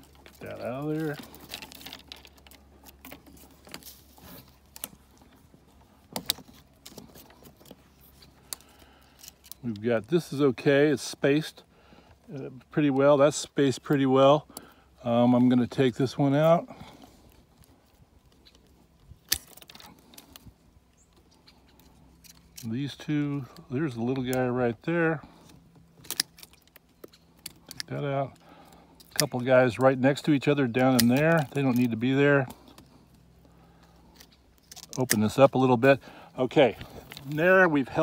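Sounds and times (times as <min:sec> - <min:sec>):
twigs rustling: 0:00.0 - 0:38.0
hand pruners clicking: 0:30.7 - 0:32.8, 0:34.1 - 0:35.7.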